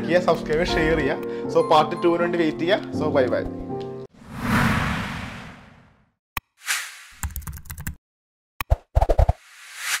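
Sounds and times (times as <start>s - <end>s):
rising whoosh: 4.2s - 6.0s.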